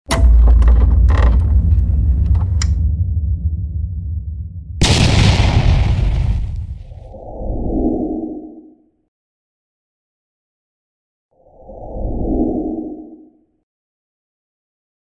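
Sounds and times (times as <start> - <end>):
deep boom: 0.2 - 7.2.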